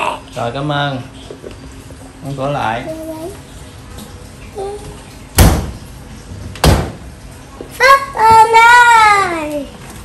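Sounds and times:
child's voice: 0:02.8 - 0:03.4, 0:04.6 - 0:05.0, 0:07.7 - 0:09.8
glass cabinet door banging shut: 0:05.4 - 0:05.8, 0:06.6 - 0:07.1.

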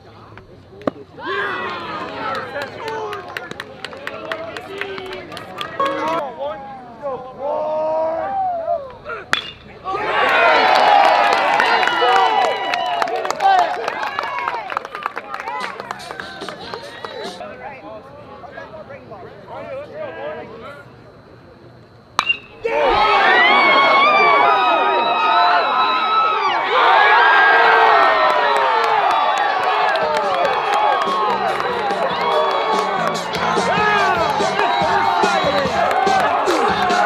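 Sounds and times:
crowd shouting and chattering: 0:00.0 - 0:37.0
crowd cheering: 0:01.2 - 0:17.4, 0:22.2 - 0:37.0
bat hitting ball: 0:09.3 - 0:09.8, 0:22.2 - 0:22.7.

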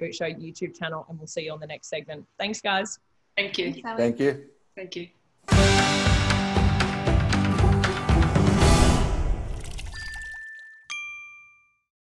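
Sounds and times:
bell-like ding: 0:10.0 - 0:11.9.

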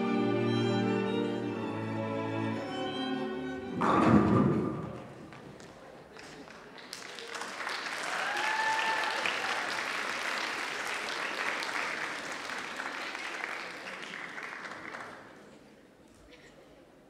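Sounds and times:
audience applauding: 0:04.9 - 0:15.5.

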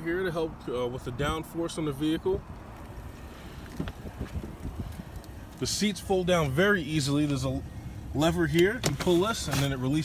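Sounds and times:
wind on microphone: 0:03.7 - 0:05.2.

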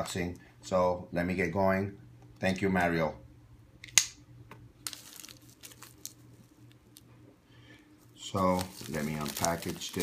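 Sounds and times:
bubble wrap crinkling and clicking: 0:04.8 - 0:07.1, 0:08.2 - 0:10.0.

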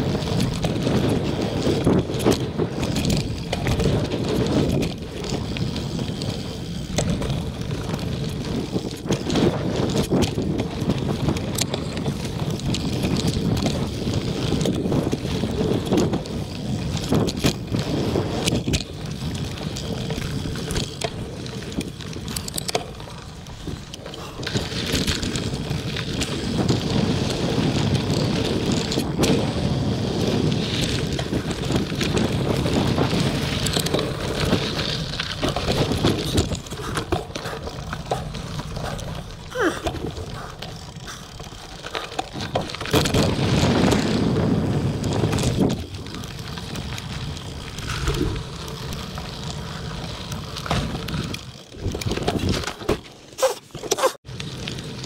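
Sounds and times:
wind rushing over microphone: 0:00.0 - 0:52.7
bike clicks and rattles: 0:00.0 - 0:55.0
bike tyres rolling on dirt: 0:00.0 - 0:55.0.

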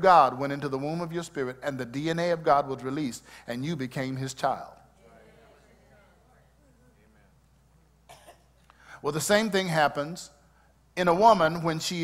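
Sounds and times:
person coughing: 0:08.1 - 0:08.6.

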